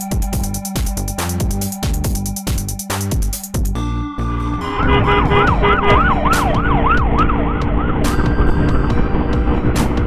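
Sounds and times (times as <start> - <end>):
motorcycle running: 4.6 - 10.0
emergency siren yelping: 4.7 - 8.8.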